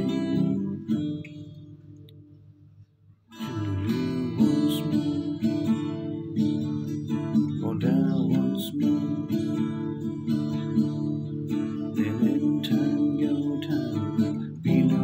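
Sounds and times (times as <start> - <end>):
acoustic guitar playing: 0.0 - 15.0.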